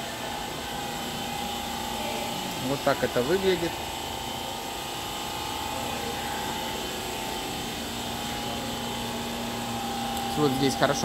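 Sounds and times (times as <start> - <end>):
machinery hum: 0.0 - 11.0.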